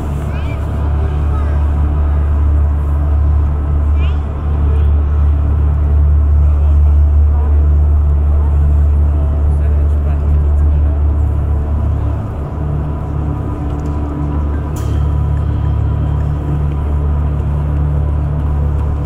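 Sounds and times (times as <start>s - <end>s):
deep rumbling drone: 0.0s - 19.0s.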